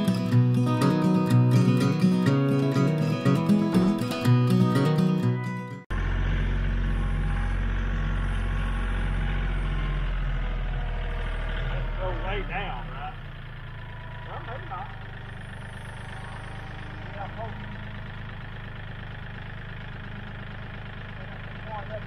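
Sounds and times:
tractor diesel engine idling: 0.0s - 22.0s
voices calling out: 6.4s - 22.0s.

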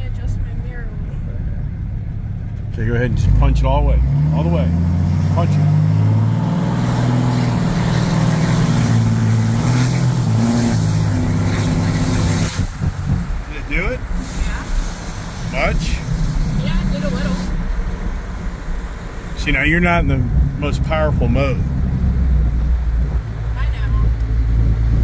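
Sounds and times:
loud diesel engine at full throttle: 0.0s - 18.8s, 19.4s - 25.0s.

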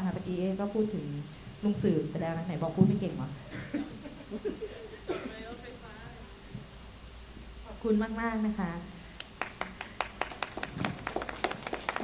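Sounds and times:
scattered applause: 9.2s - 12.0s.

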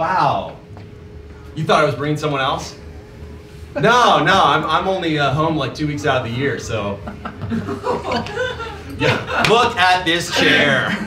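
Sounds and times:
audience laughing: 7.0s - 11.0s.

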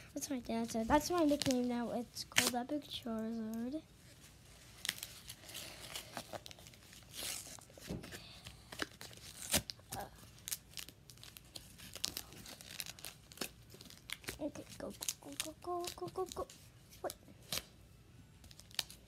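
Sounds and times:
foil wrapper tearing and crinkling: 0.8s - 2.8s, 4.6s - 7.8s, 8.6s - 16.5s, 18.4s - 19.0s.

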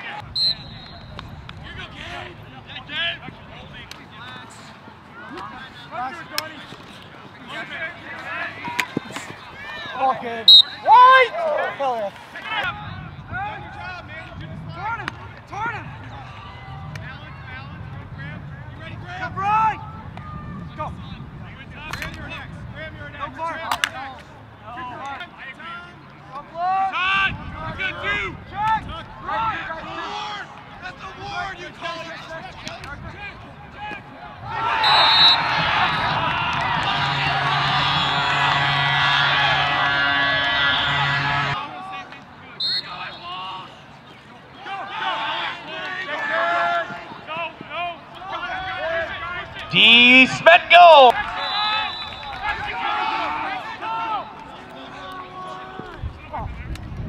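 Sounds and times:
players shouting calls: 0.0s - 17.4s, 24.6s - 56.0s
faint crowd voices: 0.0s - 57.0s
referee whistle blast: 0.4s - 1.2s, 10.5s - 11.0s, 34.7s - 36.2s, 36.9s - 41.6s, 42.6s - 43.4s, 49.7s - 52.5s.

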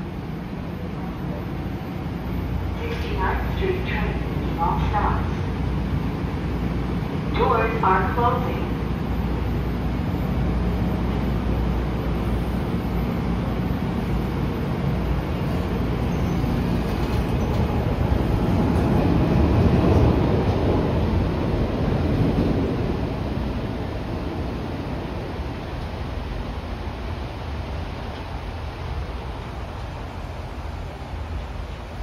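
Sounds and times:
subway train pulling out: 0.0s - 32.0s.

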